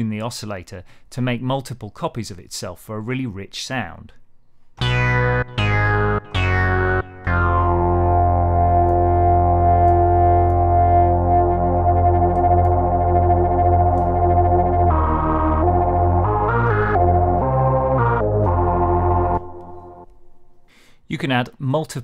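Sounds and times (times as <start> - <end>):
synthesizer notes: 4.8 - 20.2.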